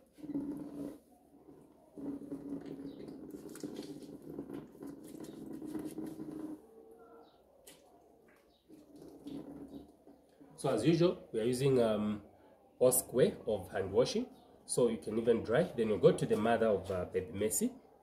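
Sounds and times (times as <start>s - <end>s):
water running over hands: 2.4s - 6.2s, 8.7s - 9.9s.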